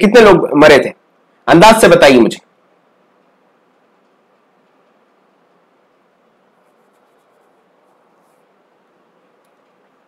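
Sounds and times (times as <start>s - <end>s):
steady low hiss: 0.0s - 10.0s
faint soft scratching: 6.3s - 9.9s.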